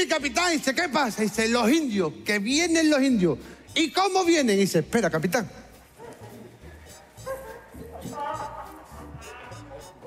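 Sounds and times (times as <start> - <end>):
background music with low beat: 2.5 - 10.0
man making comic vocal noises: 7.8 - 10.0.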